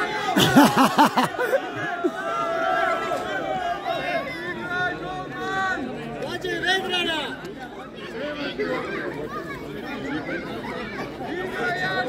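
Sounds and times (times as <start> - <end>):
overlapping voices chattering: 0.0 - 12.0.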